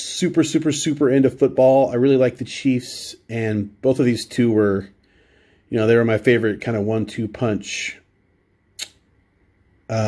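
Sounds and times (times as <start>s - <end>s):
short sharp click: 8.8s - 9.1s.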